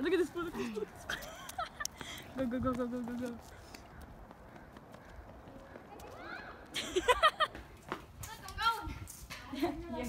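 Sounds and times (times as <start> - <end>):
wind rumble on microphone: 8.1 - 10.0.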